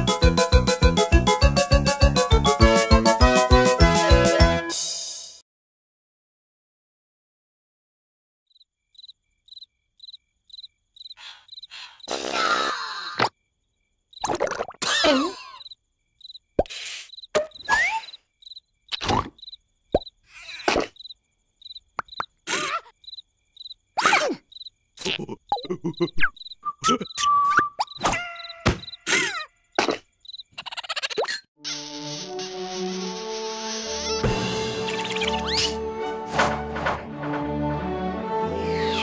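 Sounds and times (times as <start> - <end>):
cricket chirping: 8.5 - 12.2, 13.3 - 14.6, 15.4 - 31.0
cartoon character squeaks and grunts: 17.6 - 18.1, 20.3 - 21.0, 22.5 - 23.0, 24.0 - 24.4, 25.0 - 31.5
comic knocks: 28.0 - 29.0.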